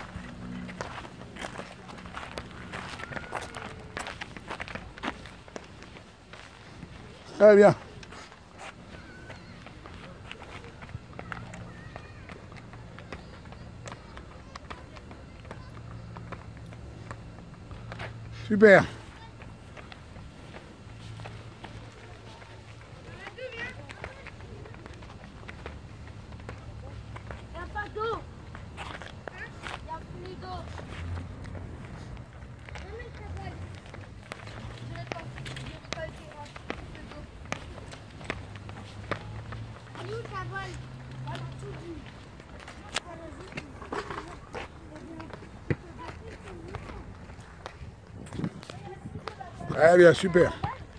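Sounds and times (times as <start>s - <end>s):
faint distant voices: 0.0s - 50.9s
footsteps on rubber track: 0.0s - 50.9s.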